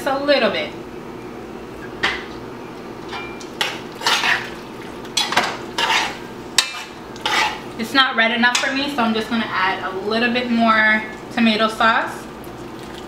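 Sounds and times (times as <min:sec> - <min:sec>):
metal spoon scraping a pot: 0:03.6 - 0:04.5, 0:05.2 - 0:07.7.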